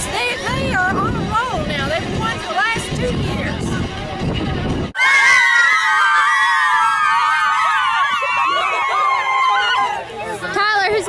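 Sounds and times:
girls screaming: 5.0 - 10.1.

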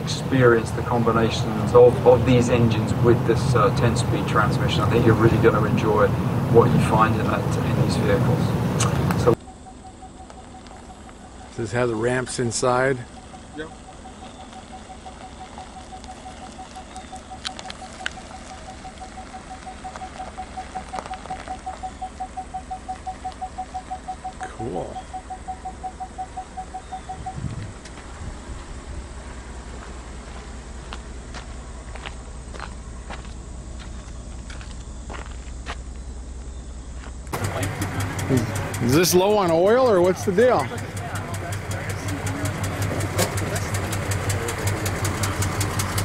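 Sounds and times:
pickup truck engine running: 0.0 - 46.0
rapid single-pitch beeps: 9.3 - 27.6.

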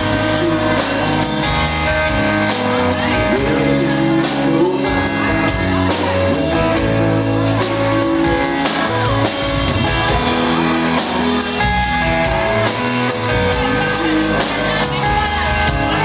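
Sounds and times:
drum kit beat: 0.0 - 16.0
electric bass: 0.0 - 16.0
electric guitar: 0.0 - 16.0.

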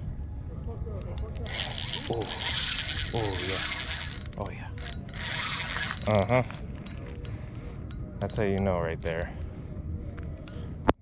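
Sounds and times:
low wind rumble: 0.0 - 11.0
fishing reel drag hissing: 1.4 - 6.4.

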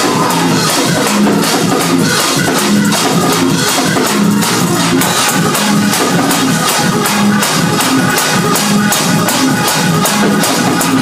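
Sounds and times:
fast percussive beat: 0.0 - 11.0
organ bass line: 0.0 - 11.0.

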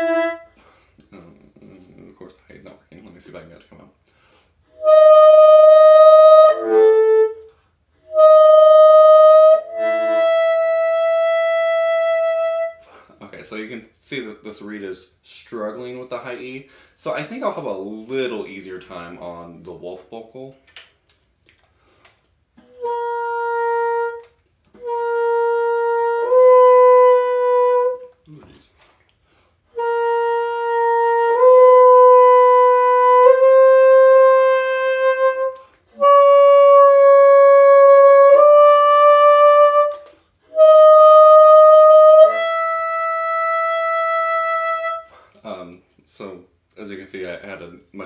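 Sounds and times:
bassoon playing high held notes: 0.0 - 0.6, 4.7 - 12.9, 22.6 - 28.1, 29.7 - 45.3.

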